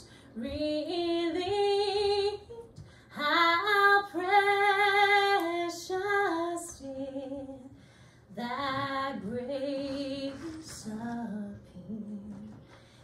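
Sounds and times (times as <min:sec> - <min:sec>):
woman singing with vibrato: 0:00.0 - 0:12.8.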